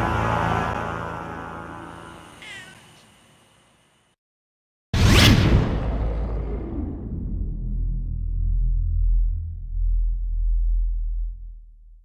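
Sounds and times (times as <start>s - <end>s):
music: 0.0s - 2.4s
cat meowing: 2.4s - 2.8s.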